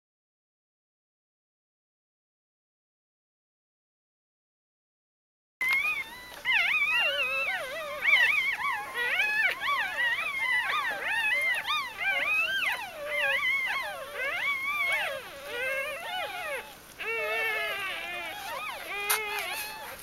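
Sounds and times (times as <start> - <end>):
puppies squealing and whining: 5.6 - 20.0.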